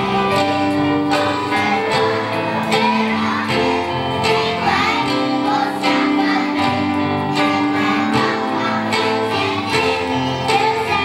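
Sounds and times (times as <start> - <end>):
children singing a pop song: 0.0 - 11.0
electric guitar: 0.0 - 11.0
keyboard: 0.0 - 11.0.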